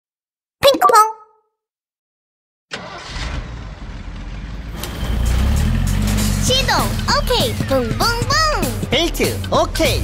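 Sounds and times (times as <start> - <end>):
bus engine rumbling: 2.8 - 10.0.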